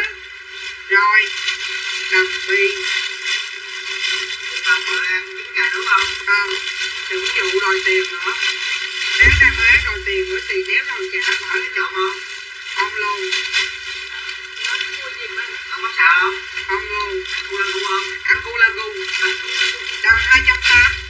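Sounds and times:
deep low thump: 9.2 - 10.4, 20.1 - 21.0
person talking in filtered voice: 9.2 - 10.4, 20.0 - 21.0.

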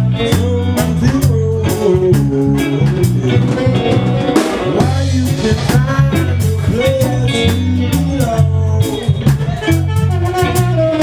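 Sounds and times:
bass guitar line: 0.0 - 11.0
drum kit: 0.0 - 11.0
electric guitars bending notes: 0.0 - 11.0.

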